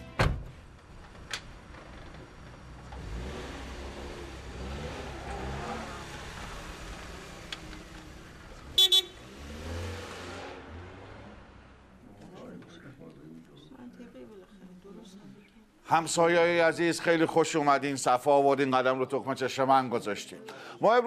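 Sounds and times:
car engine pulling away: 0:00.6 - 0:12.6
car horn double toot: 0:08.7 - 0:09.3.

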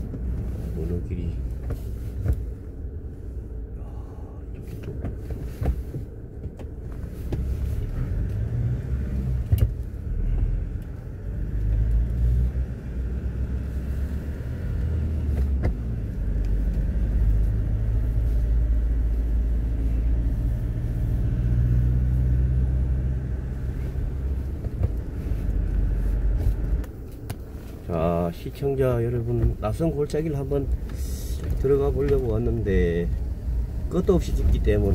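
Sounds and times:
car engine and road rumble: 0:00.0 - 0:34.9.

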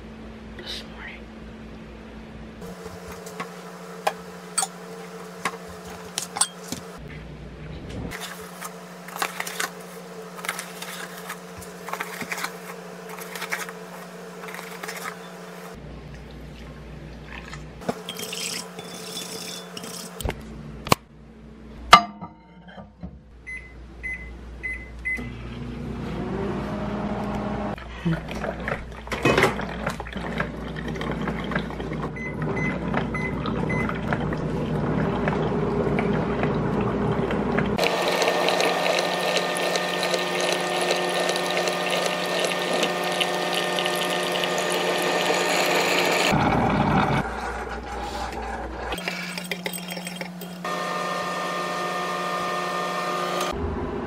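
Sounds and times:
electrical hum: 0:00.0 - 0:54.0.

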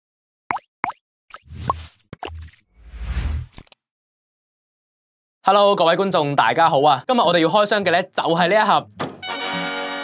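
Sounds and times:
cartoon plops: 0:00.5 - 0:02.6.

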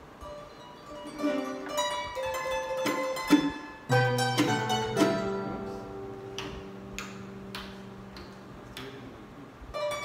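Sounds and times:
harp and guitar chord ringing: 0:00.2 - 0:06.9
soft sharp clicks: 0:06.3 - 0:09.0.

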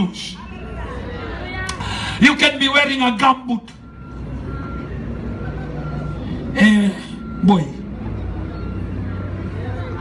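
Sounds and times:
vehicle engine rumbling: 0:00.0 - 0:10.0
faint high beep: 0:03.7 - 0:09.8.

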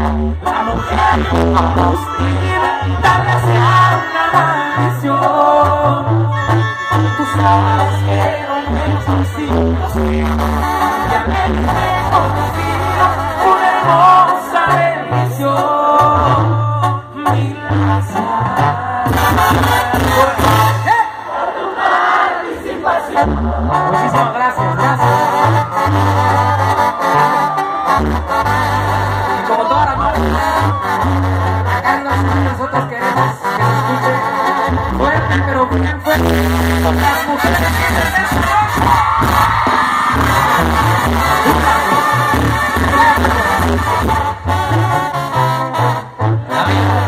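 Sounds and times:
crowd cheering and shouting: 0:00.0 - 0:16.6, 0:18.3 - 0:47.0
tuba bass line: 0:00.0 - 0:21.3, 0:22.9 - 0:47.0
brass band music: 0:00.0 - 0:47.0
crowd cheering: 0:19.6 - 0:31.8, 0:37.6 - 0:47.0.

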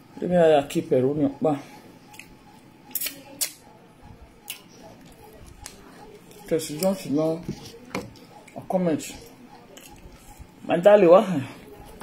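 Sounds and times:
wet chewing and lip smacks: 0:02.1 - 0:03.6.

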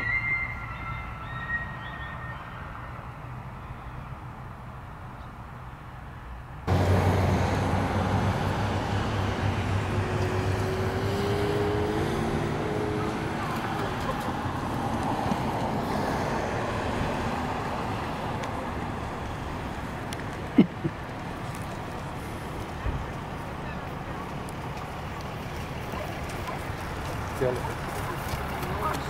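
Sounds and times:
highway traffic noise: 0:00.0 - 0:29.0
low engine hum: 0:00.0 - 0:29.0
outdoor ambience: 0:00.0 - 0:29.0.

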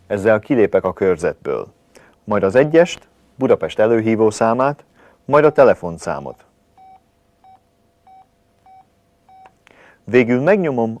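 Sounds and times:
phone keypad beeps: 0:06.8 - 0:09.6.

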